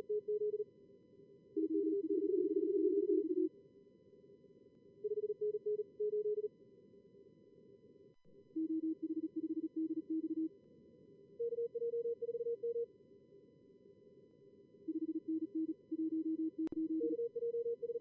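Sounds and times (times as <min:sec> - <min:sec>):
fast morse code beeps: 0:16.1 - 0:18.0.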